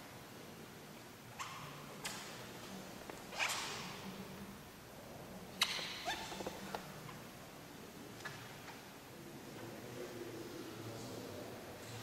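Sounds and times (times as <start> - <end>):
faint low room hum: 0.0 - 12.0
sharp clacks in reverberant room: 1.3 - 4.6, 5.5 - 7.3.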